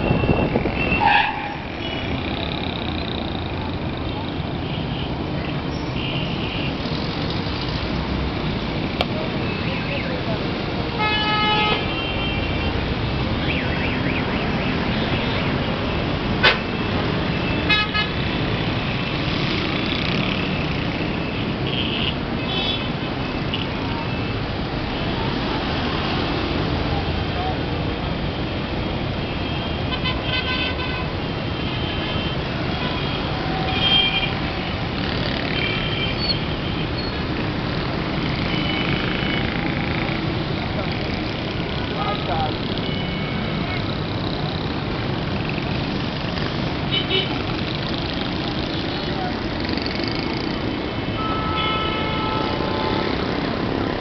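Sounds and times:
vehicle horns honking: 0:00.0 - 0:02.2, 0:10.9 - 0:12.8, 0:17.4 - 0:18.3, 0:29.3 - 0:34.6, 0:41.9 - 0:43.8, 0:46.9 - 0:47.4, 0:51.1 - 0:53.4
traffic engines and road noise: 0:00.0 - 0:54.0.

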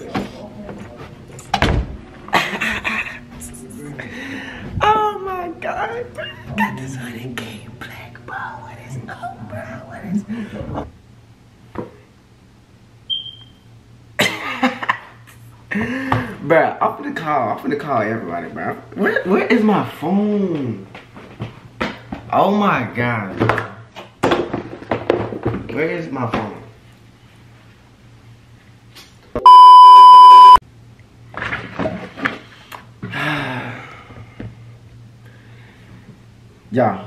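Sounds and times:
censor bleep: 0:13.1 - 0:13.7, 0:29.4 - 0:30.6.

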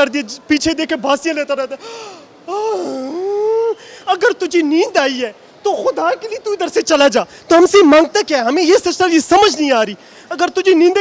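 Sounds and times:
man wailing: 0:02.5 - 0:03.8.

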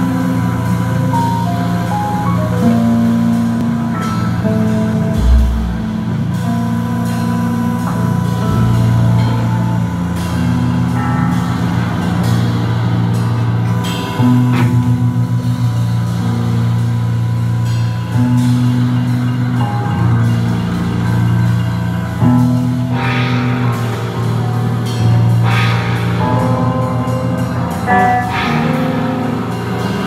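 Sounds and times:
live band playing slowly: 0:00.0 - 0:30.0
deep low thud: 0:05.2 - 0:06.3.

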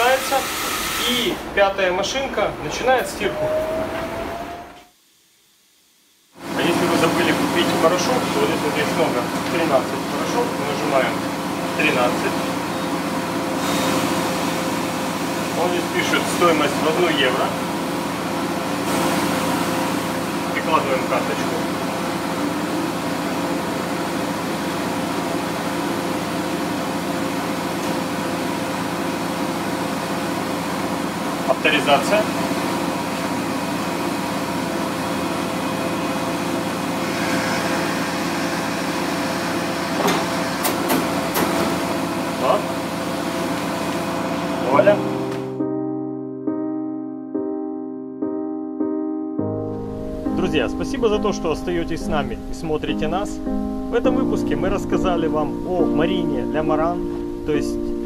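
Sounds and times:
laundry machines humming: 0:00.0 - 0:05.2, 0:06.2 - 0:45.6, 0:50.2 - 0:58.0.

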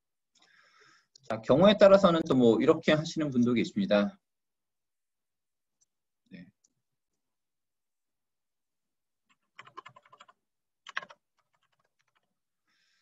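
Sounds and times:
typing on a computer keyboard: 0:09.3 - 0:12.4.

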